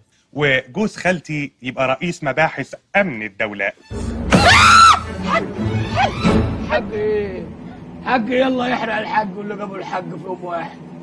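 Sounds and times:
music: 3.8s - 8.1s
person screaming: 4.3s - 6.9s.

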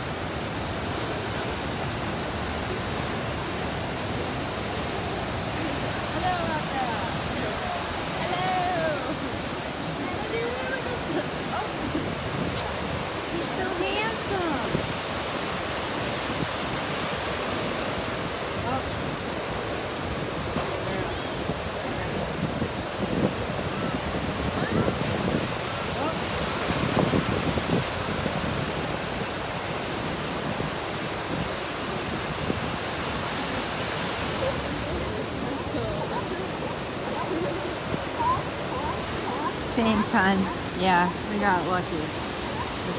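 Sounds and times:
ocean surf breaking on sand: 0.0s - 42.9s.

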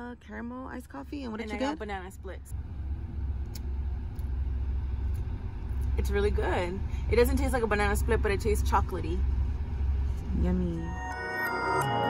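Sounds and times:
car cabin rumble: 0.1s - 11.1s.

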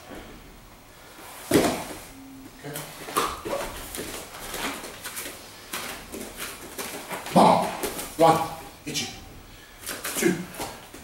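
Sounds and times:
grapplers scuffling on mat: 1.3s - 2.1s, 2.8s - 8.2s.

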